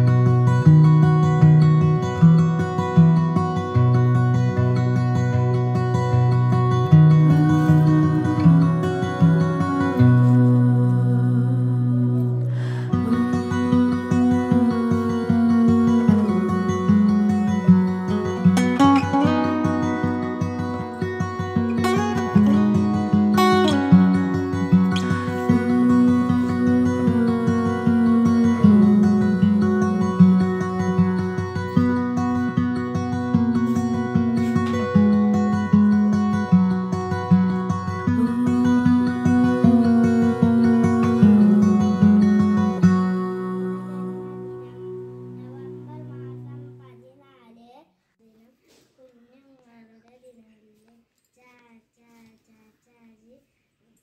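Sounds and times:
instrumental background music: 0.0 - 46.8.

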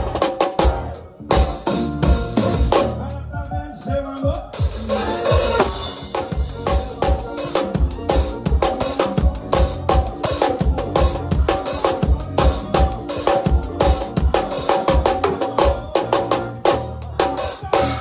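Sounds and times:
band playing: 0.0 - 18.0.

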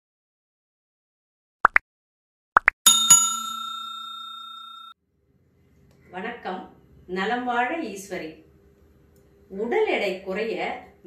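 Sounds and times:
bell ringing: 2.9 - 5.0.

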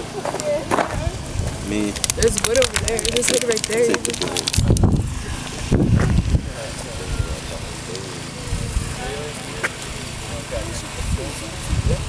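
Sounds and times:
sharp click: 1.9 - 5.0
wind rumble on microphone: 4.5 - 6.5, 11.0 - 12.0
distant voices talking: 6.4 - 11.8.

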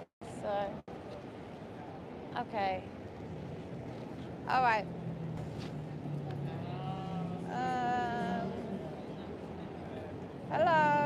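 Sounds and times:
city street hum: 0.0 - 11.0.

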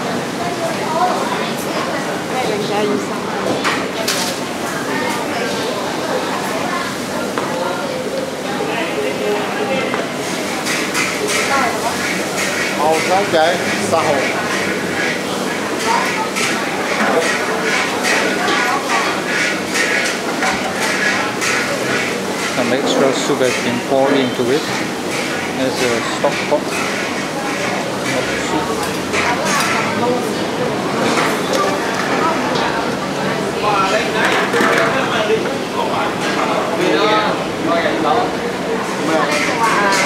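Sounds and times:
chatter of voices: 0.0 - 40.0
ladles and bowls clinking: 10.5 - 30.4.

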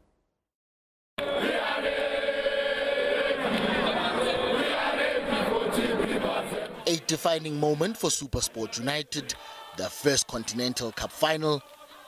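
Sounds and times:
crowd chanting and singing: 1.2 - 12.0.

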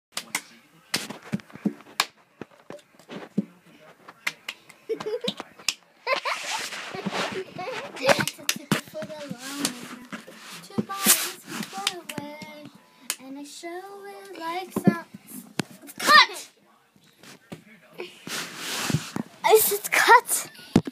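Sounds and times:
hand claps: 0.2 - 1.1, 4.2 - 5.8, 8.1 - 8.8, 11.6 - 13.2
person speaking: 6.9 - 12.6, 19.4 - 20.9.

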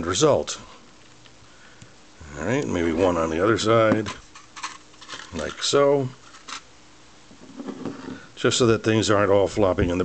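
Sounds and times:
faint handling sounds: 2.6 - 6.7.

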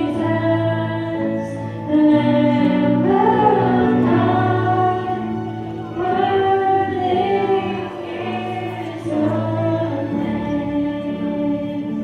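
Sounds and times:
women singing sustained notes: 0.0 - 12.0.

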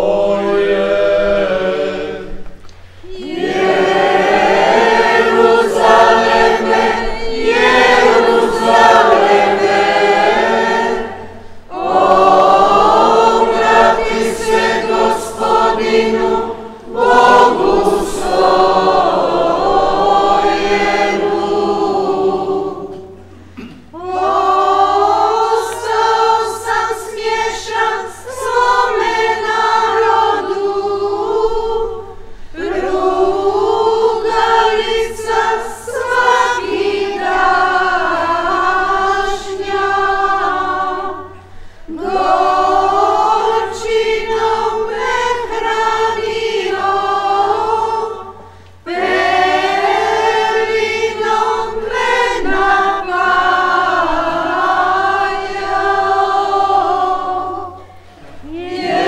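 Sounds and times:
church choir singing a hymn: 0.0 - 59.0.

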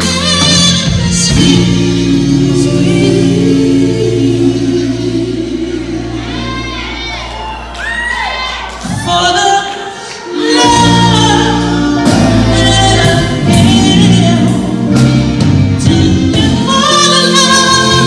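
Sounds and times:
soul band playing: 0.0 - 18.0.

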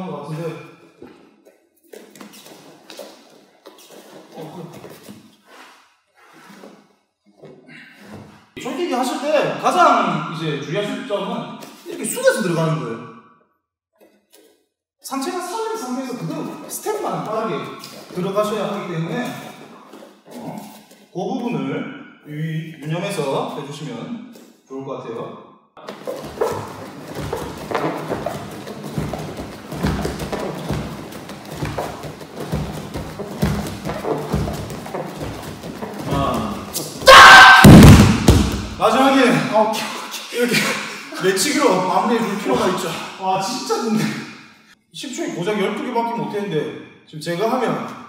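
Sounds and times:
cloth rustling: 25.8 - 37.0
bare feet stepping on mat: 25.8 - 38.8
body landing on mat: 26.0 - 38.8
low thump: 37.6 - 38.8.

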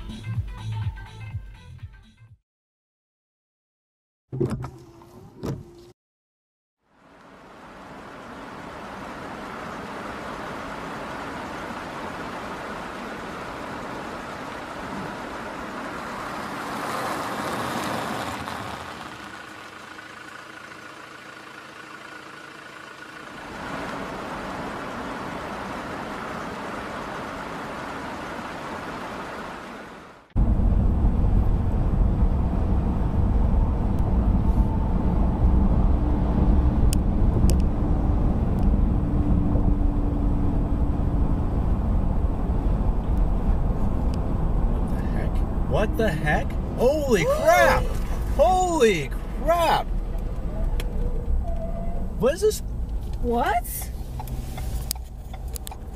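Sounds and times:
deep road rumble: 6.8 - 55.9
traffic and tyre hiss: 6.9 - 30.3, 43.2 - 55.9.

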